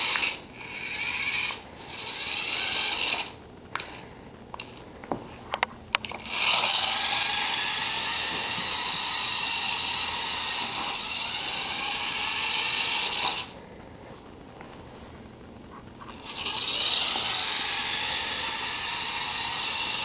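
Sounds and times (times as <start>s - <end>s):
toy truck motor whining: 0.0s - 4.0s, 6.0s - 13.6s, 16.1s - 20.0s.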